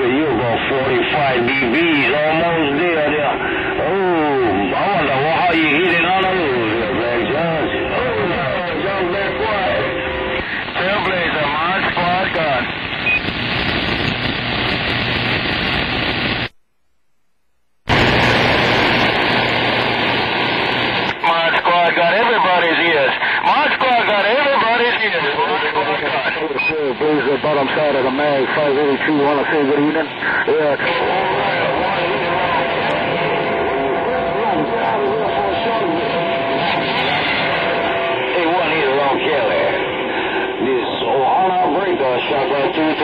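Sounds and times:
garbled radio voices: 0.0s - 15.4s, 20.2s - 43.0s
radio static: 0.0s - 16.7s, 17.9s - 43.0s.

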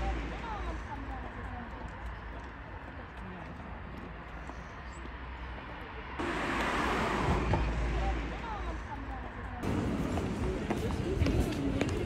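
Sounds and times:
passers-by talking: 0.0s - 12.0s
heels clicking on pavement: 9.6s - 12.0s.

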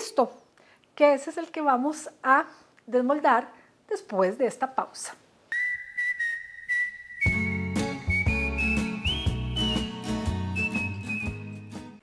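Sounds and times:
whistled melody: 5.5s - 12.0s
instrumental backing with bass and beat: 7.3s - 12.0s.

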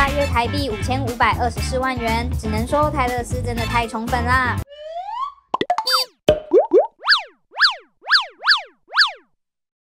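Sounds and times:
cartoon upward pitch sweeps: 4.7s - 9.3s.

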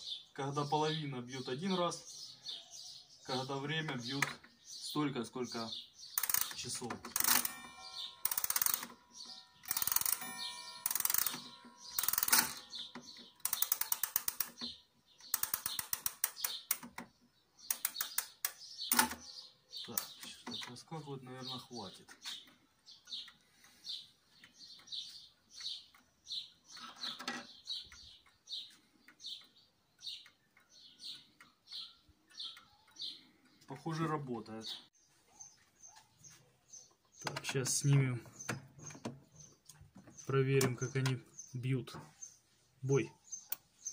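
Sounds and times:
rapid mechanical clicking: 6.2s - 7.5s, 13.4s - 14.6s, 15.3s - 17.0s
pendulum wall clock ticking: 6.2s - 16.9s, 21.9s - 26.6s, 27.8s - 34.3s.

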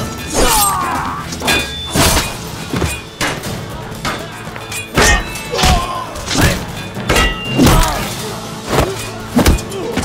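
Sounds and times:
sword blades clashing: 0.0s - 9.9s
dramatic music score: 0.0s - 10.0s.

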